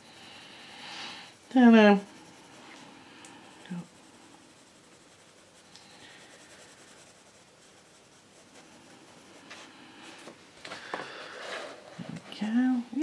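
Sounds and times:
pencil scratching on paper: 0:00.0 - 0:10.3.

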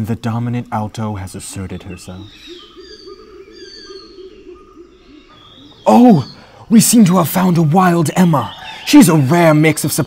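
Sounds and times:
low repeated bird calls: 0:00.0 - 0:10.0
high whistled bird chirps: 0:01.5 - 0:10.0.

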